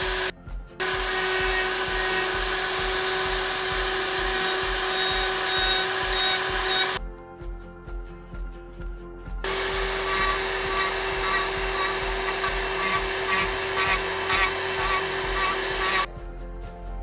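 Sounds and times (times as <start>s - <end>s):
rotary tool grinding wood: 0.0s - 7.0s, 9.5s - 16.1s.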